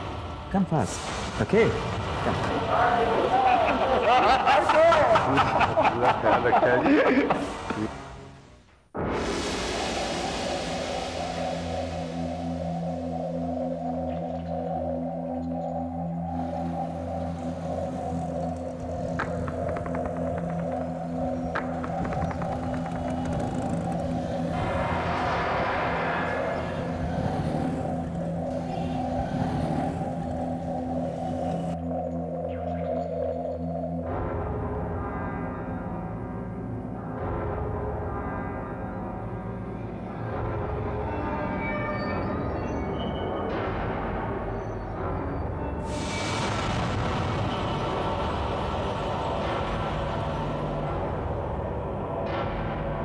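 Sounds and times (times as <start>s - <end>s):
droning background score: 0.0s - 53.0s
rushing sound: 9.0s - 14.3s, 16.6s - 31.8s, 45.8s - 52.1s
car engine running: 18.0s - 25.2s.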